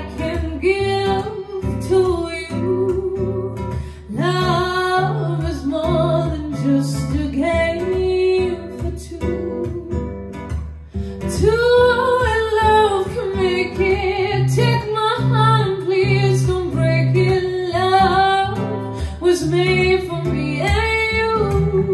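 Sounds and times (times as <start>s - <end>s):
acoustic guitar: 0.0s - 21.9s
woman singing: 0.0s - 21.9s.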